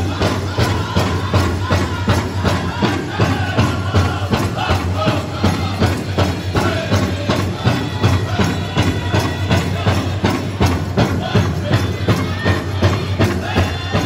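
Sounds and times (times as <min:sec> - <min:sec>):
big drum beating: 0:00.0 - 0:14.0
drum group singing: 0:00.0 - 0:14.0.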